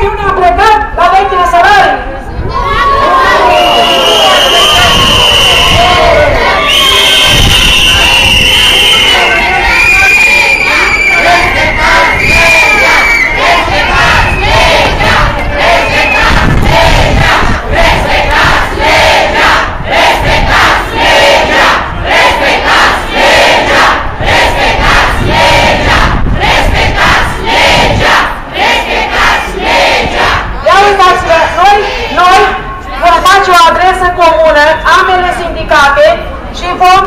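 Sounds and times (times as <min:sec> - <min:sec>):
crowd chanting and shouting: 0:00.0 - 0:37.0.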